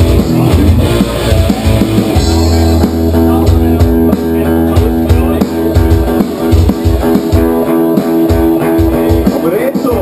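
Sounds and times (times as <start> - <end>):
bass guitar: 0.0 - 10.0
drum kit: 0.0 - 10.0
electric guitars: 0.0 - 10.0.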